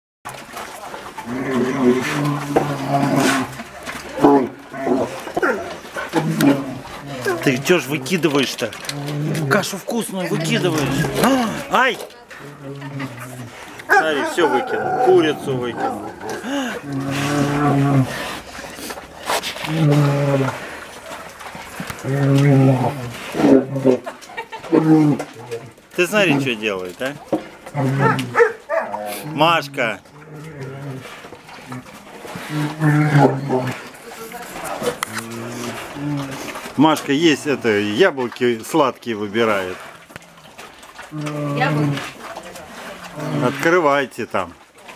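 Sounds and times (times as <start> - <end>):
young bears calling: 1.2 - 38.0, 39.9 - 43.7.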